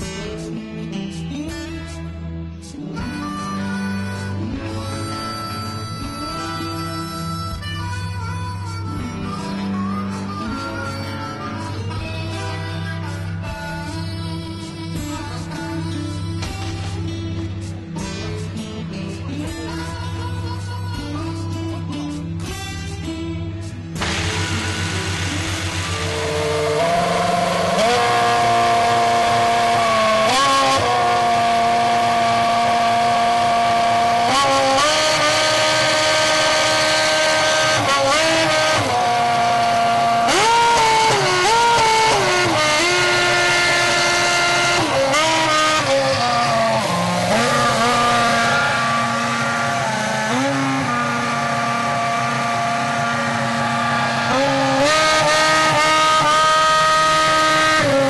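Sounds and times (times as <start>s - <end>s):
race car engine revving: 23.9s - 58.0s
external starter: 24.0s - 58.0s.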